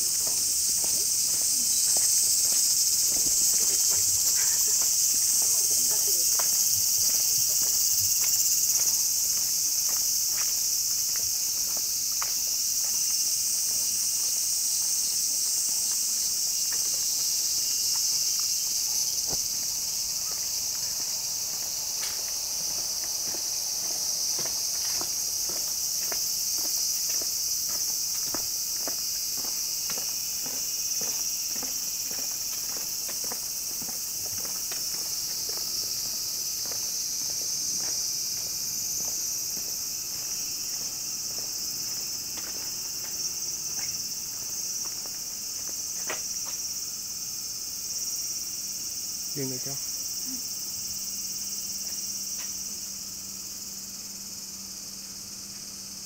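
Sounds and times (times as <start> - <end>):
footsteps on paving: 0.0 - 46.9, 51.2 - 52.7
cicadas buzzing: 0.0 - 56.0.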